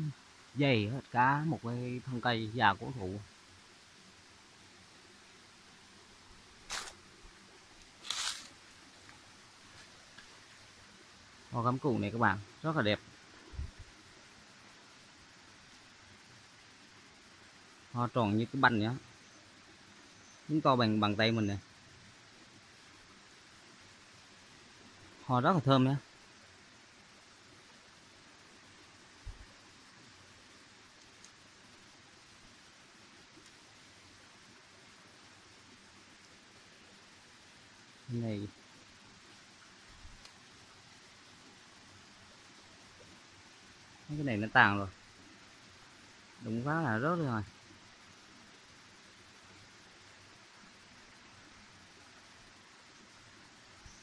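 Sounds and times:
faint steady hiss: 0.0s - 54.0s.

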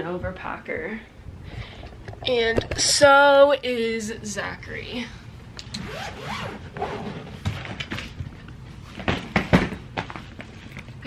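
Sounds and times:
fabric rubbing: 5.8s - 7.4s
suitcase zipper: 5.8s - 7.4s.

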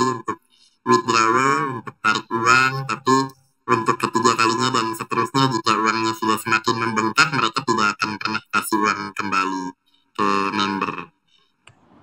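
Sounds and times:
man's drawn-out voice: 0.0s - 11.1s.

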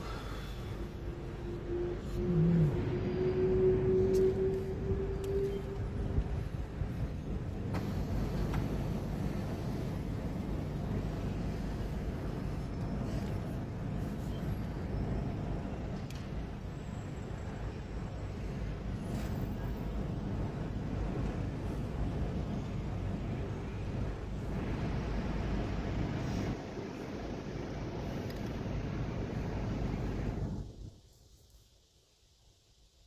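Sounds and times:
car engine and road rumble: 0.0s - 30.9s
steady hum: 0.0s - 31.2s.

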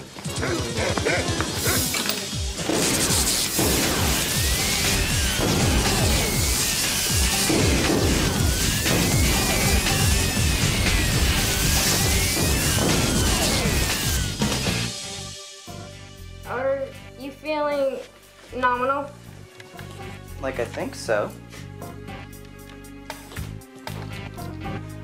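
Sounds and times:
falling electric zaps: 0.2s - 15.6s
electrical crackling: 0.3s - 15.0s.

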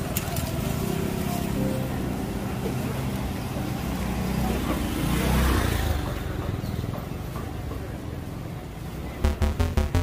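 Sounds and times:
market crowd chatter: 0.0s - 9.2s.

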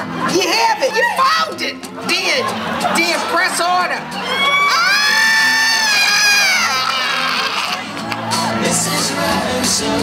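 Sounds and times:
crowd cheering: 2.4s - 10.0s
person shrieking: 4.3s - 7.8s.

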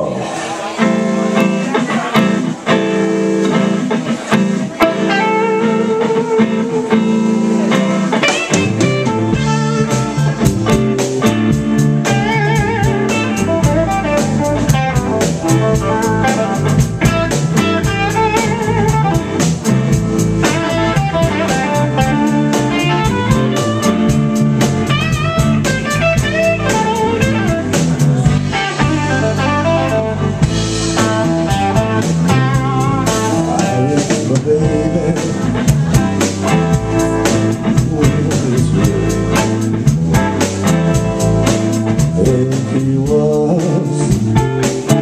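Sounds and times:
blues band playing: 0.0s - 45.0s
lead electric guitar bent notes: 0.0s - 45.0s
steady cymbal beat: 7.1s - 45.0s.

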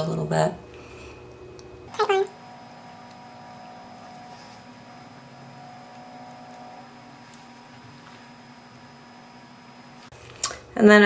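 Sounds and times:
low background hum: 0.0s - 11.0s
faint steady tones: 0.6s - 10.1s.

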